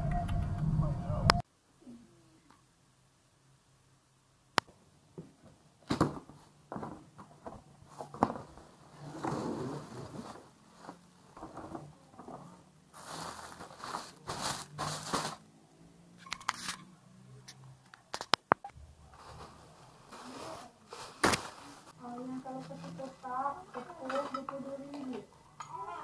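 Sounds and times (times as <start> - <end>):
plastic wrapping rustling: 5.8 - 15.4, 19.0 - 25.3.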